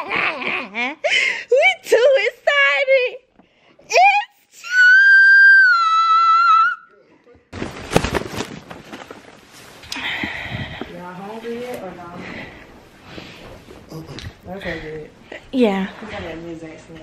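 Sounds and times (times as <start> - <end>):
long high-pitched scream: 4.6 - 6.9
rustling and crackling: 7.5 - 14.4.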